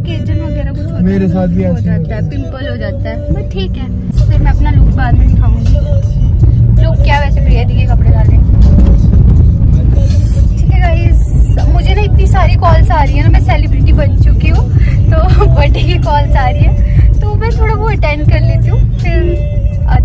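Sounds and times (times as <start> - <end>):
woman talking: 0.0 - 1.0, 1.8 - 5.8, 6.8 - 8.4, 10.6 - 20.0
background music: 0.0 - 20.0
car cabin rumble: 0.0 - 20.0.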